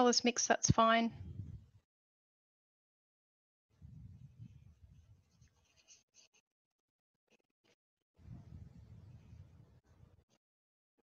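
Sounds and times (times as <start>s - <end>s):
faint low rumble: 1.1s - 1.8s, 8.2s - 10.2s
paintbrush strokes on paper: 4.4s - 6.4s.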